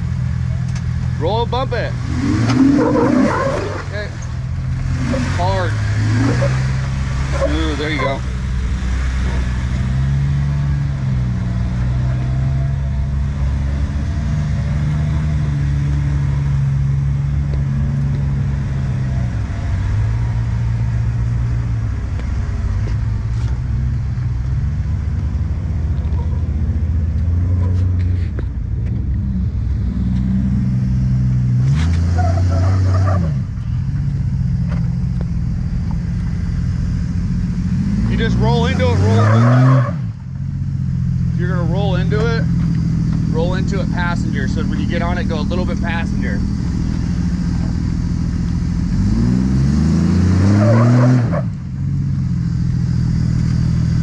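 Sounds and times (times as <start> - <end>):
off-road vehicle engine at low revs: 0.0 - 54.0.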